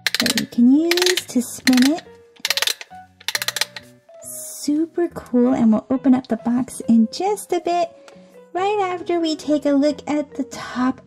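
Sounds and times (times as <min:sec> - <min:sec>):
music box winding ratchet clicks: 0:00.0 - 0:03.9
background music: 0:00.0 - 0:11.0.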